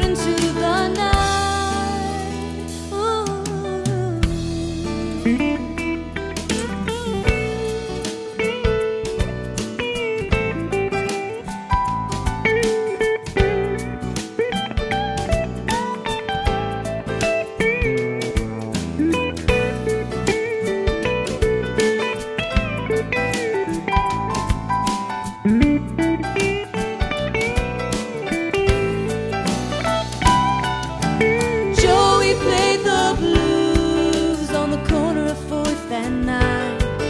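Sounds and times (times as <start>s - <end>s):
lead guitar solo: 0.0s - 35.0s
bass guitar: 0.0s - 37.0s
steady drum beat: 13.4s - 35.3s.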